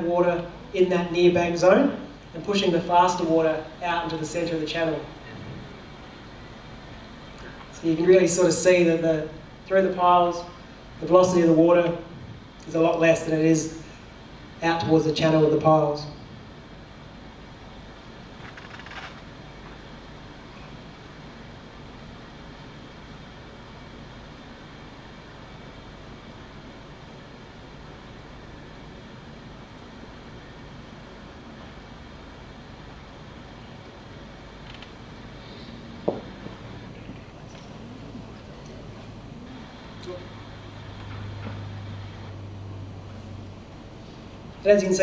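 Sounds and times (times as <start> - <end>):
low drone over loudspeakers: 0.0 - 45.0
hiss of noise: 32.8 - 44.6
steady rushing noise: 33.2 - 45.0.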